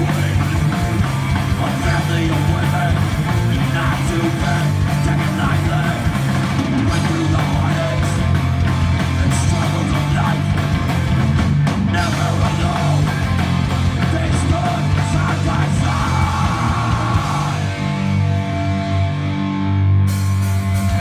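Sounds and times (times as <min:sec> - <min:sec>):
vocals through a pa: 0:00.0 - 0:06.2, 0:06.8 - 0:08.3, 0:09.1 - 0:10.7, 0:11.9 - 0:17.8
bass guitar: 0:00.0 - 0:21.0
distorted electric guitar: 0:00.0 - 0:21.0
drums: 0:00.0 - 0:21.0.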